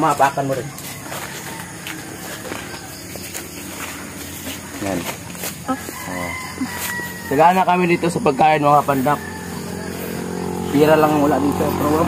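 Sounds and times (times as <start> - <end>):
rooster crowing: 0.1 - 12.0.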